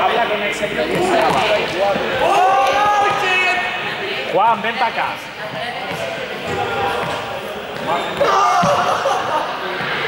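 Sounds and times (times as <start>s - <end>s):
ball bouncing on floor: 0.9s - 1.6s.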